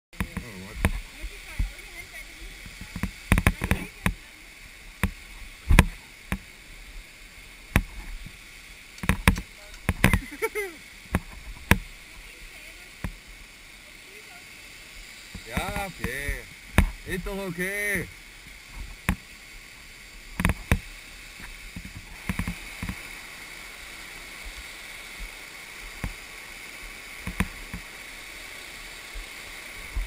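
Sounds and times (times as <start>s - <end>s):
rush of falling water: 0.2s - 30.0s
camera bumping against rock: 9.0s - 10.3s.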